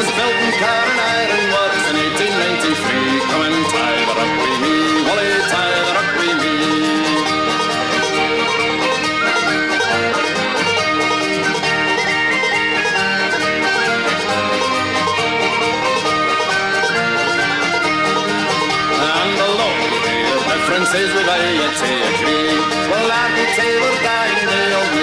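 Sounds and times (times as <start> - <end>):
person singing: 0.0 - 11.3, 18.6 - 25.0
guitar: 0.0 - 25.0
lead melody line: 0.0 - 25.0
plucked banjo: 0.0 - 25.0.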